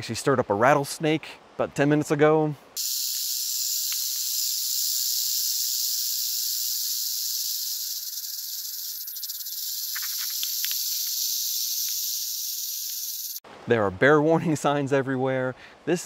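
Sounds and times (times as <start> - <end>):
rattlesnake rattling: 2.8 - 13.4.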